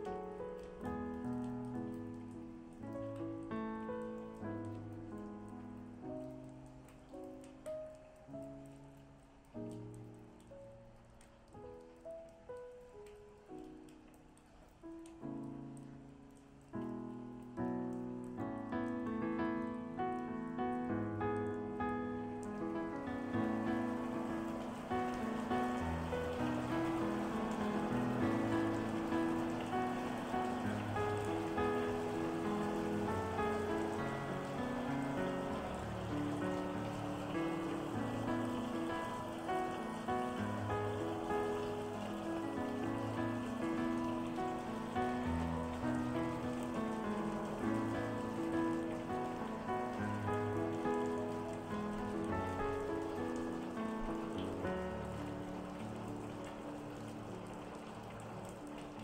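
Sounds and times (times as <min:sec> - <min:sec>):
calm solo piano music: 0:00.0 - 0:59.0
rain pattering: 0:00.0 - 0:59.0.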